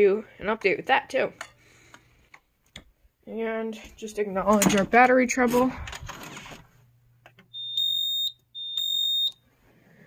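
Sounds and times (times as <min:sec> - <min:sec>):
high-pitched beeps: 0:07.5 - 0:09.4.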